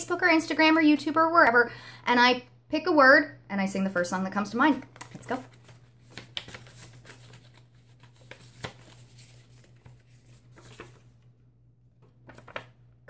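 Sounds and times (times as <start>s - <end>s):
paper slips rustling and crinkling: 5.0s - 11.2s.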